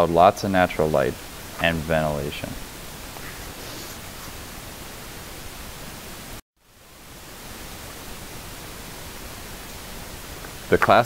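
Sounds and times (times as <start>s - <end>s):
recording background hiss: 0.0s - 11.0s.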